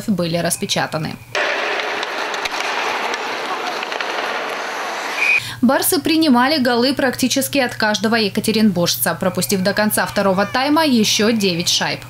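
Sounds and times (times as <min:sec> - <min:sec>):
faint clicks of sticks and puck: 0:01.4 - 0:05.2
skates hissing on ice: 0:01.4 - 0:05.4.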